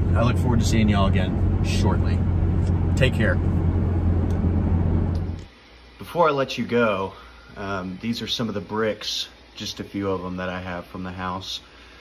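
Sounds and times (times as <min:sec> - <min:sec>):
engine and road noise in cabin: 0:00.0 - 0:05.5.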